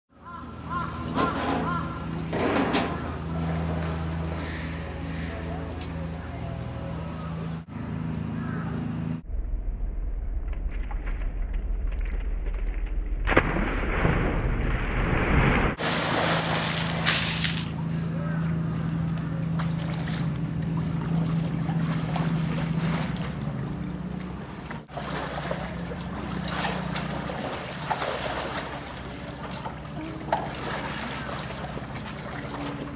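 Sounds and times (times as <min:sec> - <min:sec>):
water splashing and sloshing: 0:00.1 - 0:06.2, 0:10.4 - 0:32.9
steady low hum: 0:00.1 - 0:32.9.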